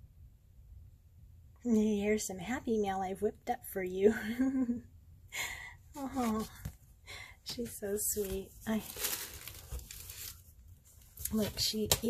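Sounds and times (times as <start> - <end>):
tissue paper rustling: 6.0 - 6.7, 7.5 - 12.0.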